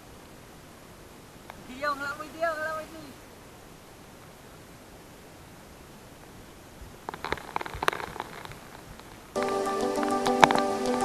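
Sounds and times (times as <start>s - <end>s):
stones dropped into shallow water: 7.1s - 8.8s
scattered ticks: 7.1s - 11.0s
background music: 9.4s - 11.0s.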